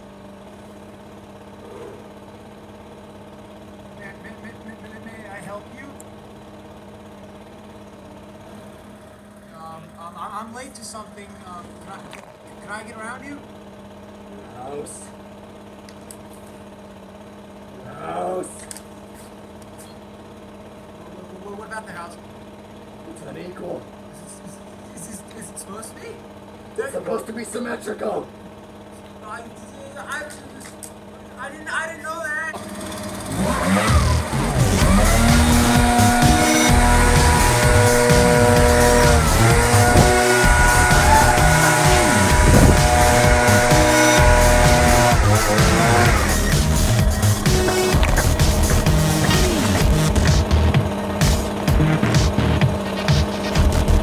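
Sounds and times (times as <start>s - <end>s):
leaf blower running at high revs: 0.0s - 54.0s
small motor humming: 0.0s - 54.0s.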